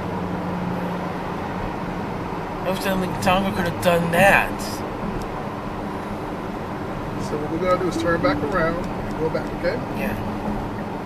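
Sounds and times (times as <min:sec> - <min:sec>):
road and tyre noise: 0:00.0 - 0:11.0.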